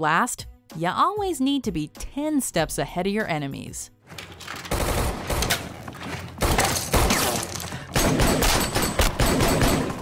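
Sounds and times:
rapid gunfire bursts: 0:04.7 - 0:05.5, 0:06.4 - 0:10.0.

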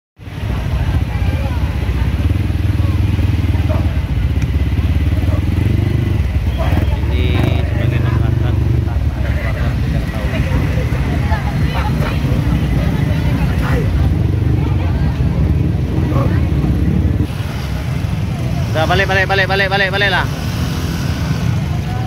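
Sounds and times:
motorcycle engines running: 0:00.2 - 0:22.0
people's voices: 0:00.2 - 0:22.0.

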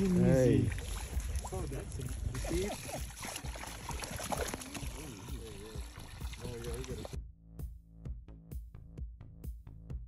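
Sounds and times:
water spraying and splashing: 0:00.0 - 0:07.2.

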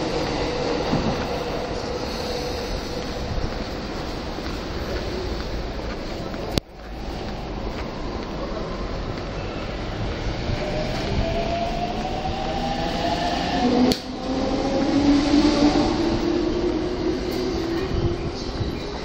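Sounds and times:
rolling rumble of train cars: 0:00.0 - 0:19.0.

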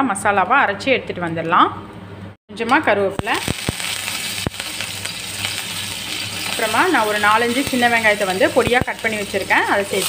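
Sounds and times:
seeds sizzling in hot oil: 0:03.2 - 0:10.0.

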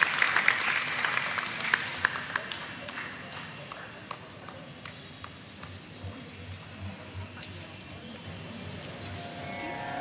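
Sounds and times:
applause: 0:00.0 - 0:05.4
faint high whine: 0:07.0 - 0:10.0.

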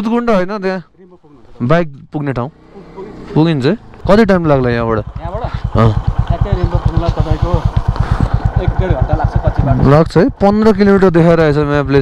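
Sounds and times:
motorcycle engine idling: 0:02.5 - 0:12.0.

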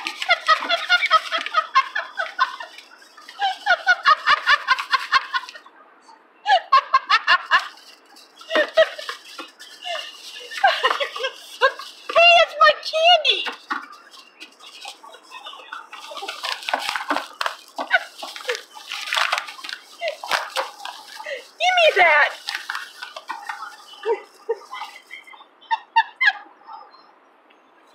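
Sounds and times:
paper bags rustling: 0:00.0 - 0:05.6, 0:07.3 - 0:25.3
high wavering vocal calls: 0:07.5 - 0:27.1.

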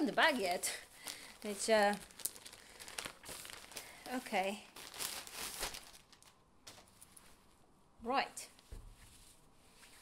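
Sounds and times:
plastic bag crinkling: 0:00.0 - 0:07.0.

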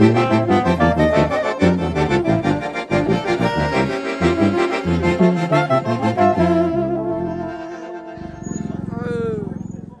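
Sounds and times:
brass and accordion band chord: 0:00.0 - 0:08.8.

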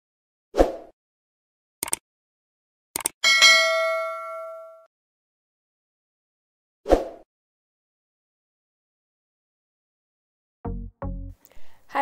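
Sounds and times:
short clicks: 0:01.8 - 0:02.0, 0:03.0 - 0:03.2
bell-like ding: 0:03.2 - 0:04.9.

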